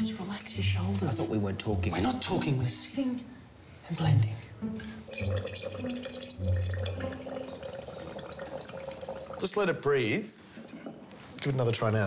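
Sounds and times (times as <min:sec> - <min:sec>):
wine trickling into glass: 0:04.8 - 0:09.6, 0:10.4 - 0:11.4.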